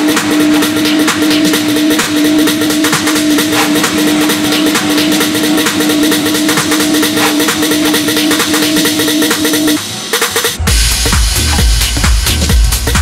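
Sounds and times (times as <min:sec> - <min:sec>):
repeated synth note: 0:00.0 - 0:11.6
fast ticking percussion: 0:00.0 - 0:13.0.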